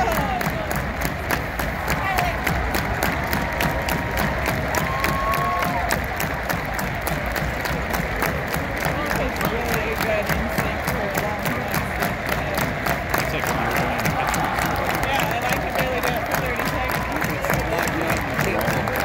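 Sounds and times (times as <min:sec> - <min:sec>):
stadium crowd cheering and applauding: 0:00.0 - 0:19.0.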